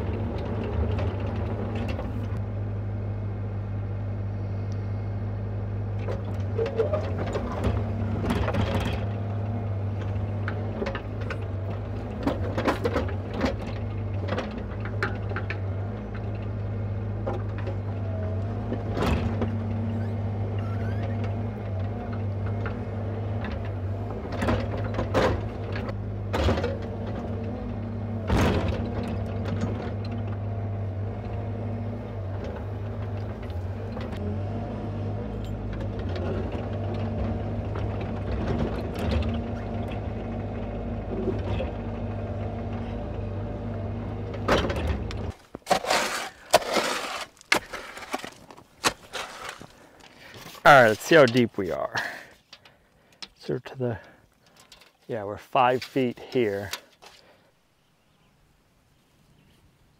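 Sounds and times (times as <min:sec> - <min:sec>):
diesel excavator engine running: 0:00.0 - 0:57.5
bucket knocking and scraping rocks: 0:44.6 - 0:51.7.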